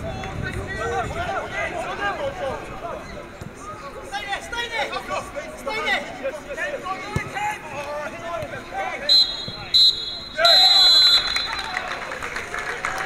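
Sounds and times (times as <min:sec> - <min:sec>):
players shouting: 0:00.1 - 0:12.4
referee's whistle blasts: 0:09.0 - 0:11.8.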